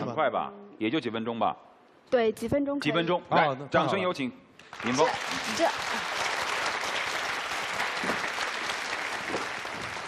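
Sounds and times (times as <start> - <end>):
audience applauding: 4.6 - 10.0.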